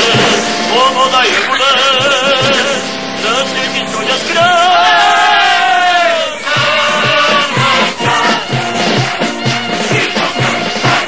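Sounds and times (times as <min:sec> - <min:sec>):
held accompaniment: 0:00.0 - 0:11.0
song with strong vibrato: 0:00.0 - 0:11.0.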